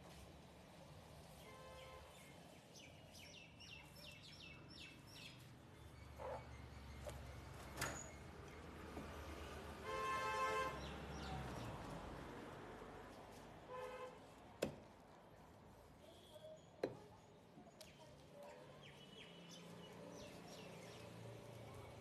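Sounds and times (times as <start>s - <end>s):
horn honking: 9.8s - 10.8s.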